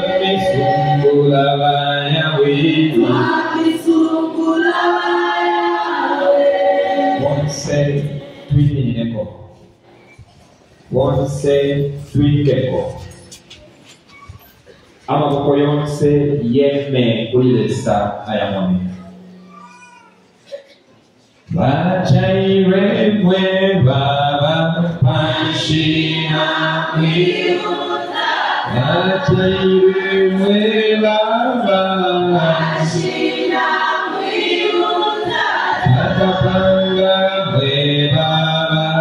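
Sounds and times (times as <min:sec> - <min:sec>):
man's voice echoing: 0:00.0 - 0:04.8, 0:06.8 - 0:19.5, 0:20.2 - 0:27.7, 0:28.6 - 0:33.6, 0:35.3 - 0:39.0
congregation singing: 0:00.0 - 0:09.3, 0:21.5 - 0:39.0
faint high voice calling: 0:18.9 - 0:20.6.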